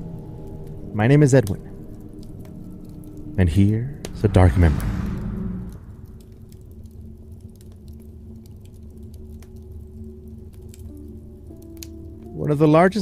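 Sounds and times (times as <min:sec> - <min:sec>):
crackling log fire: 0:00.0 - 0:13.0
dark ambient drone music: 0:00.0 - 0:13.0.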